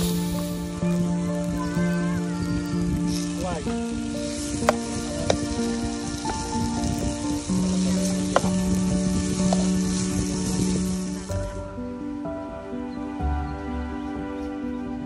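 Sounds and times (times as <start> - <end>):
vegetables sizzling in a frying pan: 0.0 - 11.6
background music: 0.0 - 15.0.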